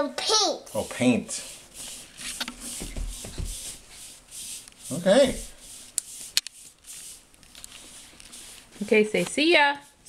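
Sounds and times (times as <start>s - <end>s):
paintbrush swishing on a wall: 1.2s - 10.0s.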